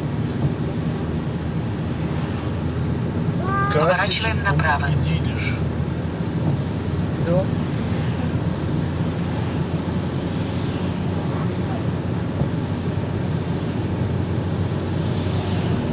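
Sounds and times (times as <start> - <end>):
car road and engine noise: 0.0 - 15.9.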